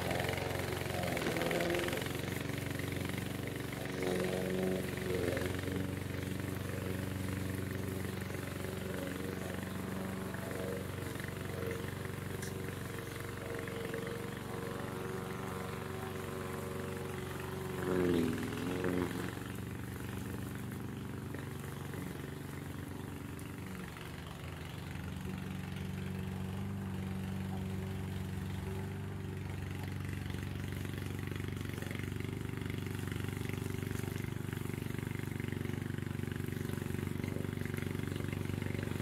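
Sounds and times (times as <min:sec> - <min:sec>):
mower engine cutting grass: 0:00.0 - 0:39.0.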